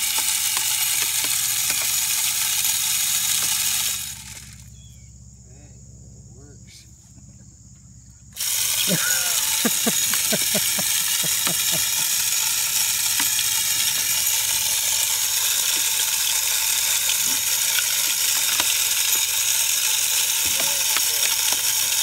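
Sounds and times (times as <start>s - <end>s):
corn kernels ticking: 0.0s - 4.8s, 8.4s - 22.0s
feeder spinner hissing: 0.0s - 4.9s, 8.4s - 22.0s.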